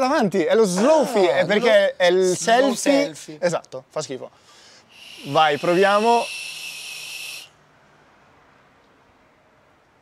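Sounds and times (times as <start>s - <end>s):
e-cigarette hissing with whistle: 4.9s - 7.5s.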